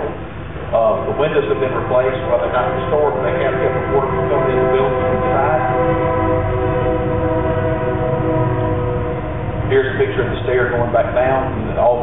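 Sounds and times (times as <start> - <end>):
train horn blast: 0.1 - 12.0.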